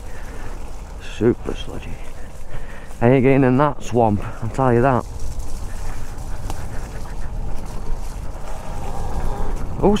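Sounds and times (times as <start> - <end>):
bike tyres and drivetrain rumble: 0.0 - 10.0.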